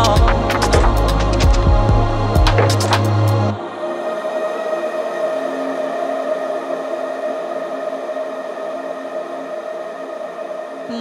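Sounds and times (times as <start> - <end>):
ambient synth pad chord: 0.0 - 11.0.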